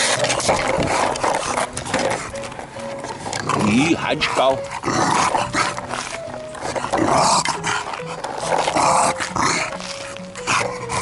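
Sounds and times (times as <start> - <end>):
background music: 0.0 - 11.0
bulldog vocalising: 0.0 - 11.0.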